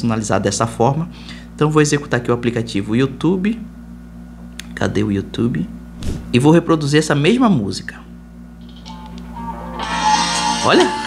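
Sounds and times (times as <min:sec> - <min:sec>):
guitar music from phone speakers: 0:08.7 - 0:11.0.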